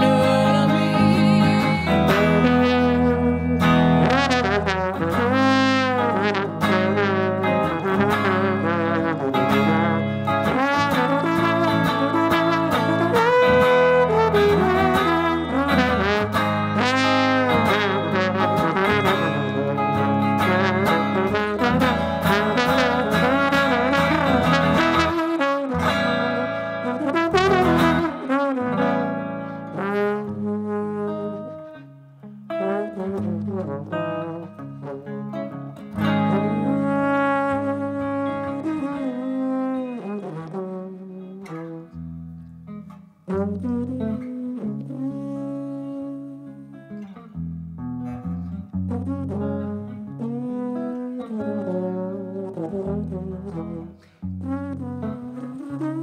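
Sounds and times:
trombone solo: 0:00.0 - 0:31.9, 0:32.5 - 0:42.2, 0:43.2 - 0:46.6, 0:48.7 - 0:56.0
electric guitar accompaniment: 0:00.0 - 0:56.0.

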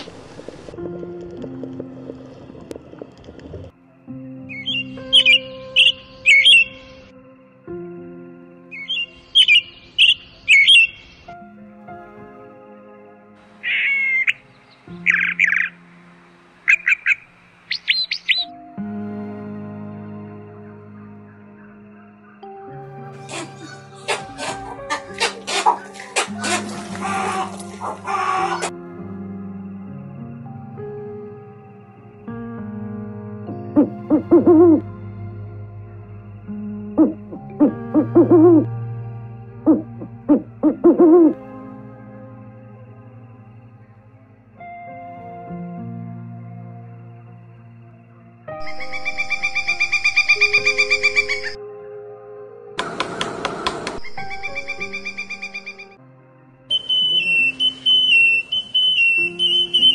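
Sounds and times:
soft background music: 0:00.0 - 0:59.9
owl hooting: 0:04.5 - 0:06.9, 0:08.7 - 0:11.2, 0:13.6 - 0:14.4, 0:15.0 - 0:15.8, 0:16.7 - 0:18.5, 0:23.2 - 0:28.7, 0:33.8 - 0:34.8, 0:37.0 - 0:38.7, 0:39.6 - 0:41.4, 0:48.6 - 0:51.6, 0:53.9 - 0:56.0, 0:56.7 - 0:59.9
bird calling and chirping: 0:04.5 - 0:07.0, 0:08.7 - 0:11.3, 0:13.6 - 0:15.8, 0:16.7 - 0:18.5, 0:48.6 - 0:51.6, 0:54.0 - 0:56.0, 0:56.7 - 0:59.9.

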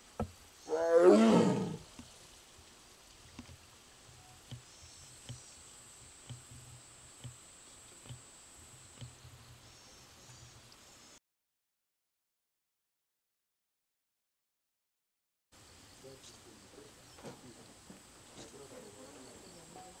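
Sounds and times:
tiger moaning call: 0:00.6 - 0:01.9
faint soft ticks: 0:04.2 - 0:05.6, 0:06.2 - 0:08.3, 0:08.9 - 0:09.2.

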